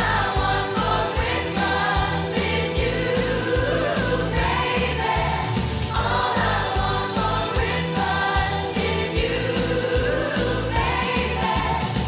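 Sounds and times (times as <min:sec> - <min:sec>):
choir singing pop song: 0:00.0 - 0:12.0
sleigh bells ringing: 0:00.0 - 0:12.0
steady drum beat: 0:00.0 - 0:12.0.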